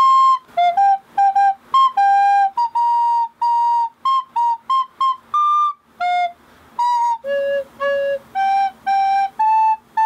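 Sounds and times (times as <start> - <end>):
recorder playing a simple tune: 0.0 - 10.0.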